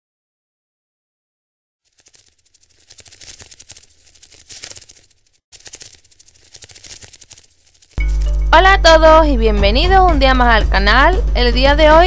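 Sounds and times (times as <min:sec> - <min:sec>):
rapid crackling clicks: 0:01.9 - 0:08.4.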